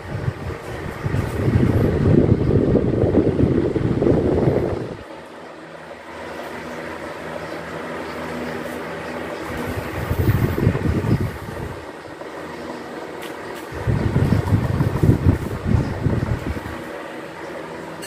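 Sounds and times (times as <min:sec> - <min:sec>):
wind buffeting microphone: 0:00.0 - 0:05.0, 0:09.5 - 0:12.3, 0:13.7 - 0:16.9
electric fans whirring: 0:00.0 - 0:18.0.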